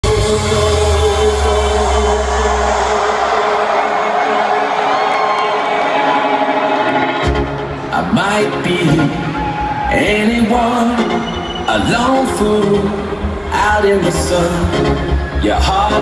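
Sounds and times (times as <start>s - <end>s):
crowd cheering: 0.0s - 16.0s
loud electronic dance music: 0.0s - 16.0s.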